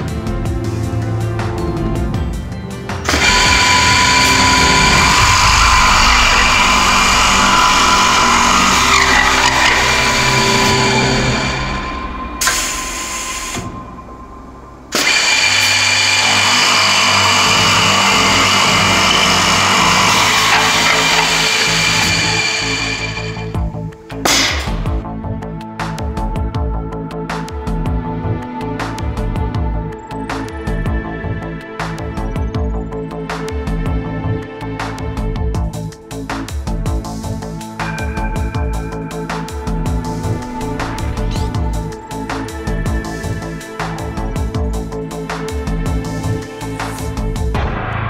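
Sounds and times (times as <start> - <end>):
background music: 0.0 - 48.0
drill head boring into wood: 3.0 - 13.7, 14.9 - 23.6
steady motor whine: 3.0 - 23.8, 37.8 - 47.2.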